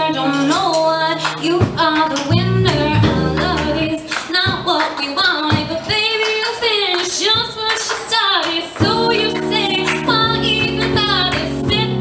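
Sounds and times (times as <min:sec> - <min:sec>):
steady drum beat: 0:00.4 - 0:06.2, 0:08.7 - 0:12.0
low bass notes: 0:02.3 - 0:04.0, 0:08.8 - 0:12.0.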